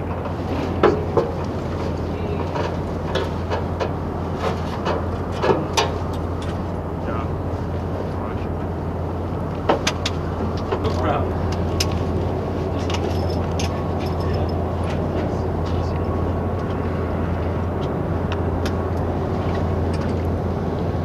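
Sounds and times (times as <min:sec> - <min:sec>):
machinery droning: 0:00.0 - 0:21.0.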